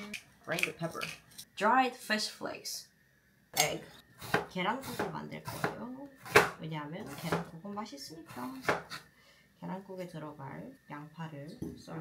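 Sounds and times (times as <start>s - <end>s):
people talking: 0.0s - 2.8s, 3.6s - 3.9s, 4.6s - 8.7s, 9.6s - 12.0s
knife cutting on wooden board: 8.4s - 9.0s.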